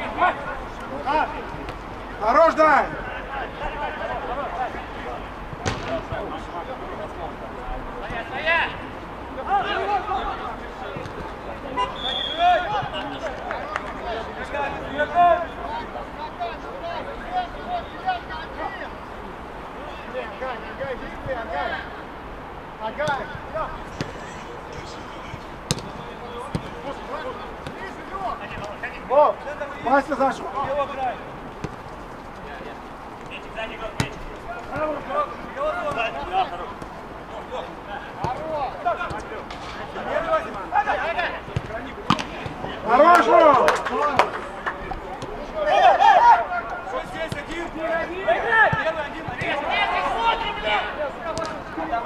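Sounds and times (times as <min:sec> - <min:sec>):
players shouting and calling: 0:00.0 - 0:52.0
ball being kicked: 0:05.5 - 0:06.2, 0:24.0 - 0:24.2, 0:25.3 - 0:26.8, 0:31.6 - 0:31.8, 0:34.0 - 0:35.0, 0:41.5 - 0:42.6.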